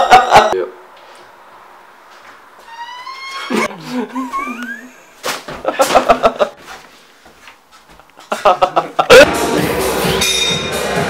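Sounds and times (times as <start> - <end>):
animal high-pitched cry: 2.7 - 3.7.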